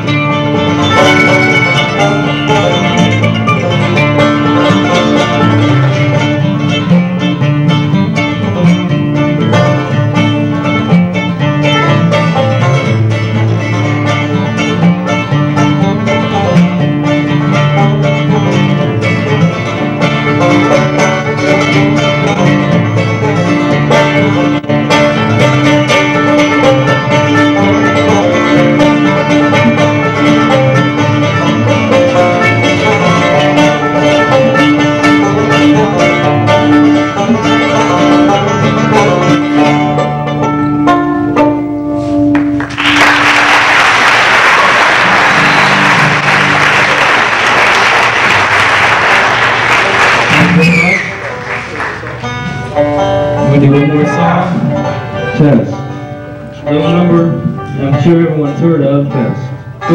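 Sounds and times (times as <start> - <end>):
banjo: 0.0 - 43.5, 44.3 - 59.9
acoustic guitar: 0.0 - 59.9
bluegrass band playing: 0.0 - 59.9.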